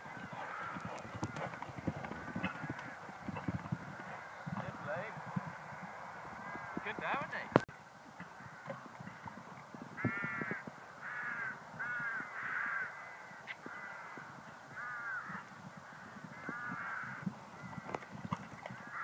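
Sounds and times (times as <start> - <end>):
crows cawing: 0.3 - 3.2, 5.6 - 7.2, 8.2 - 9.3, 10.0 - 18.0.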